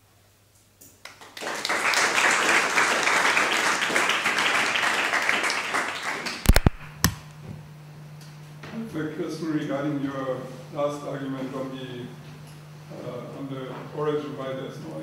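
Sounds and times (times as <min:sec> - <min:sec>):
audience applause: 0:01.1 - 0:06.8.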